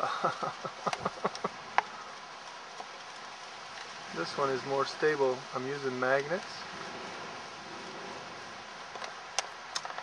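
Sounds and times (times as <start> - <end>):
steady wind noise: 0.4 - 10.0
sharp clicks: 8.9 - 10.0.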